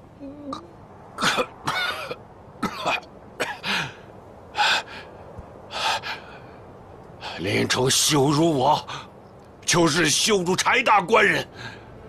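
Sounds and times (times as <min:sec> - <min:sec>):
man coughing and gasping: 0:01.2 - 0:04.0.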